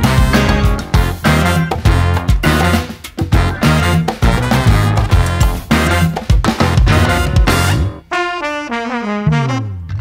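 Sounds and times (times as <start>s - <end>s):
trumpets and trombones playing: 0.0s - 10.0s.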